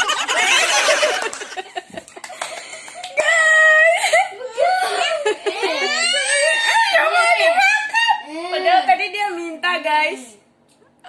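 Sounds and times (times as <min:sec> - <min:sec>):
girl laughing: 0:00.0 - 0:02.3, 0:03.2 - 0:06.7
young child whining: 0:04.4 - 0:07.0.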